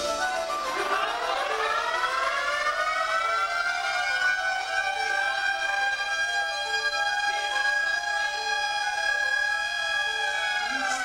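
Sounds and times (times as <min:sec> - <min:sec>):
siren-like electronic tone: 0:00.6 - 0:11.0.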